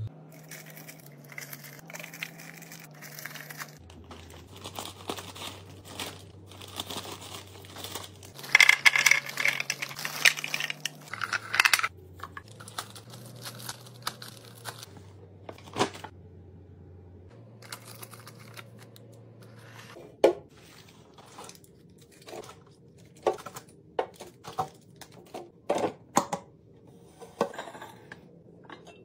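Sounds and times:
candy wrappers crinkling: 0:00.3 - 0:15.0, 0:17.6 - 0:19.0
candies clicking on plastic: 0:00.7 - 0:14.9.

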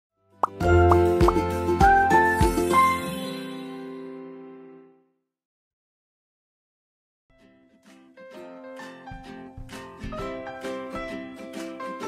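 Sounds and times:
cartoon pop sound effects: 0:00.4 - 0:01.4
cheerful jingle music: 0:00.4 - 0:04.7.

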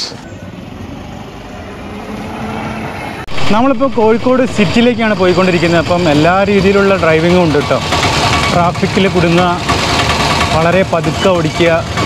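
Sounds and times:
tyre and road noise: 0:00.0 - 0:12.0
electric scooter hum: 0:00.1 - 0:12.0.

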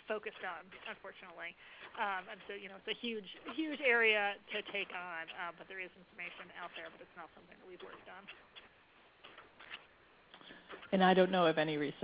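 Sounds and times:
person speaking: 0:00.0 - 0:08.7.

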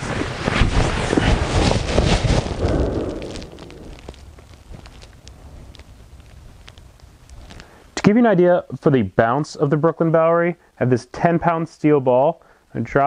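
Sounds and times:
fabric rustling: 0:00.0 - 0:06.7.

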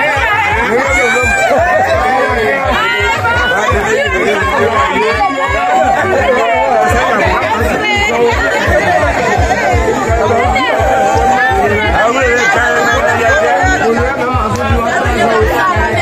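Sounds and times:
crowd chattering: 0:00.0 - 0:16.0
music with fast low beat: 0:00.0 - 0:16.0.

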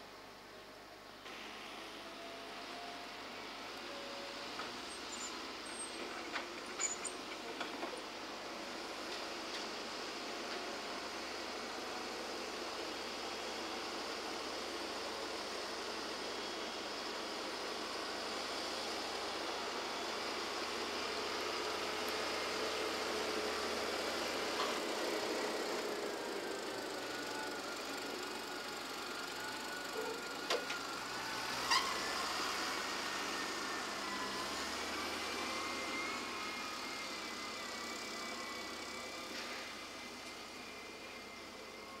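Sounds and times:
diesel engines running: 0:01.3 - 0:42.0.

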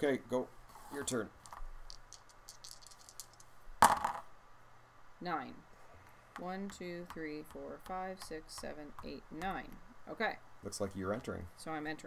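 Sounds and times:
dice clattering on game board: 0:01.5 - 0:04.3.

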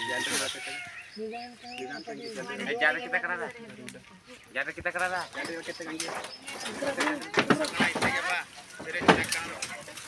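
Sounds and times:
people talking: 0:00.0 - 0:10.0
sharp knocks or rustles: 0:05.4 - 0:10.0.

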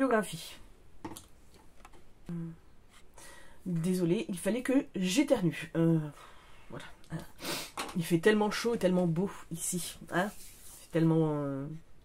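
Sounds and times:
person sniffing: 0:07.3 - 0:07.8.

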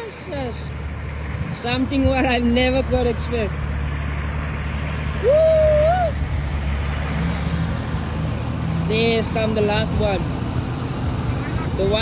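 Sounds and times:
engines droning under load: 0:00.0 - 0:12.0
person shouting: 0:05.2 - 0:06.2.

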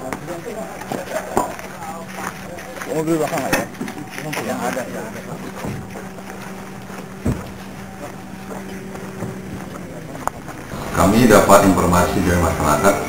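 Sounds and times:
steady low hum: 0:00.0 - 0:13.0
thump: 0:07.2 - 0:07.5.

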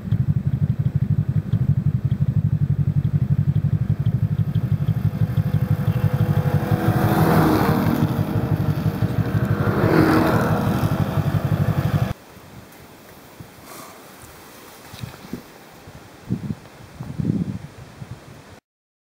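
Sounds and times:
snowmobile engines running: 0:00.0 - 0:12.2.

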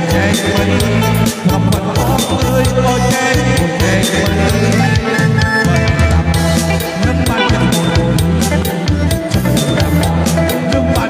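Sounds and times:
live band music through pa: 0:00.0 - 0:11.0
drum kit beat: 0:03.2 - 0:10.8.

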